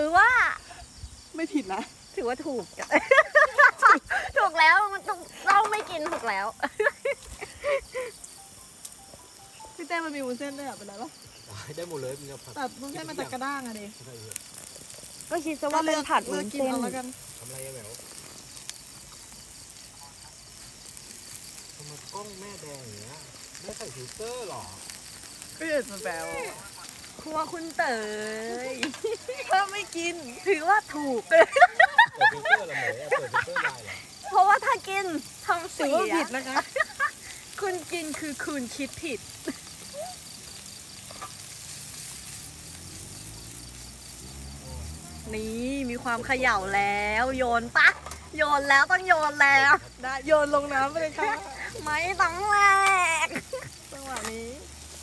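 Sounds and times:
food frying in a pan: 0.0s - 55.0s
gas stove hissing: 0.0s - 55.0s
night insects chirping: 0.0s - 55.0s.

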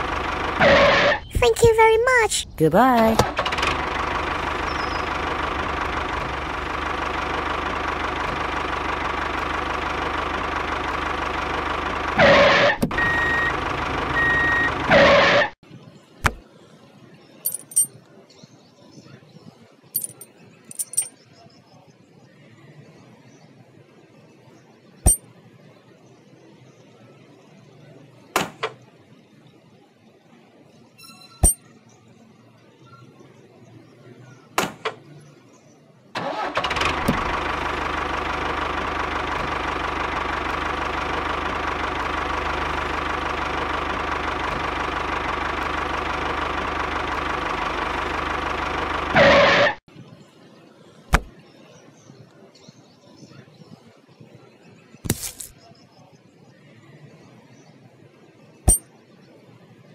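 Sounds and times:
small metal clicks and clinks: 17.5s - 18.0s, 20.0s - 21.1s.

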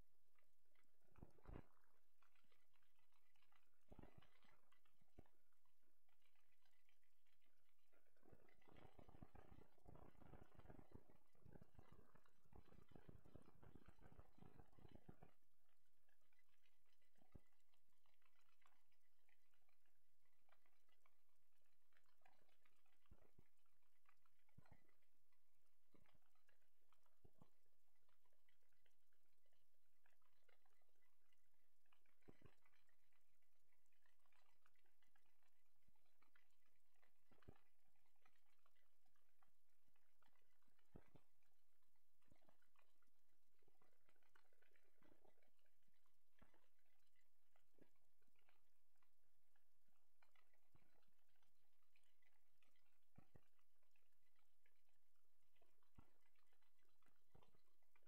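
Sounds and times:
faint clicks and crackles: 0.0s - 58.0s.

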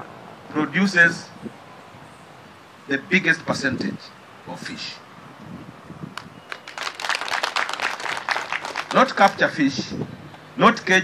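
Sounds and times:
audience clapping: 6.2s - 9.4s.

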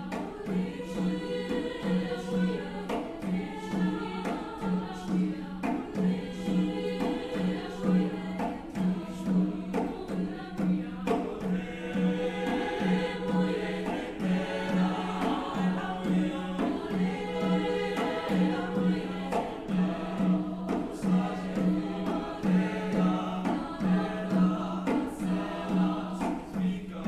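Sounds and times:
choir singing: 0.0s - 27.0s.

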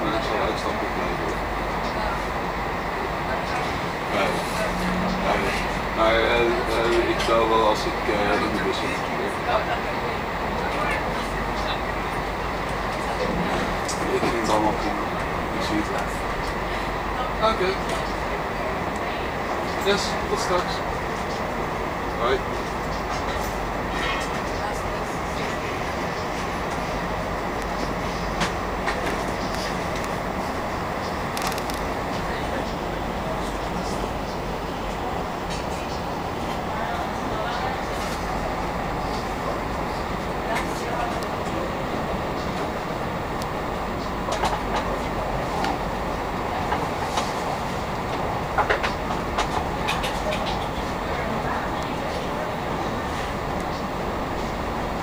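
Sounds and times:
train running noise: 0.0s - 55.0s.

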